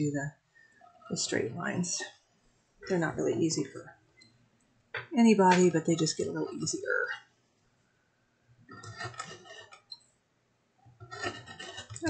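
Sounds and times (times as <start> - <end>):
craft knife scraping through card: 8.7 - 9.8, 11.0 - 12.0.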